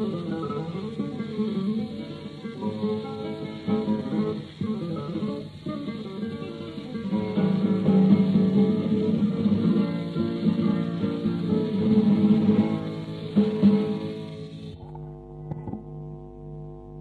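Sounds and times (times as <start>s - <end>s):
flamenco guitar solo: 0.0s - 16.2s
record hiss: 0.0s - 17.0s.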